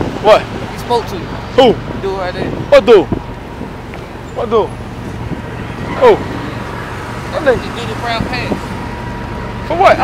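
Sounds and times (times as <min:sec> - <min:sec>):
city street traffic: 0:00.0 - 0:10.0
man speaking: 0:05.8 - 0:06.4.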